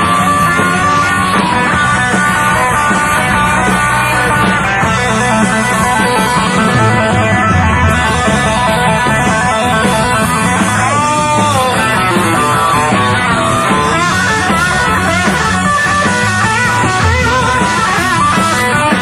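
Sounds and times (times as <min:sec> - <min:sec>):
blues-rock band playing: 0:00.0 - 0:19.0
electric guitar bending notes: 0:00.0 - 0:19.0.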